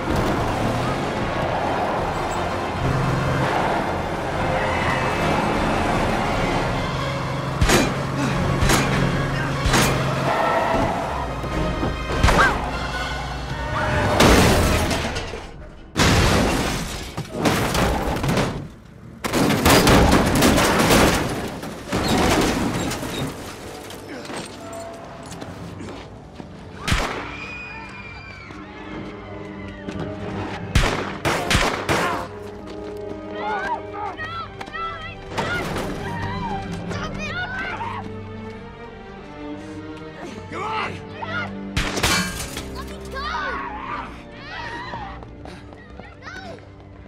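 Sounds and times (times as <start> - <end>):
orchestral score: 0.0 - 16.0, 23.0 - 46.8
people shouting: 0.5 - 7.0, 7.7 - 11.6, 12.2 - 14.2, 33.2 - 38.1, 42.9 - 45.3
loud crashes: 14.0 - 23.7.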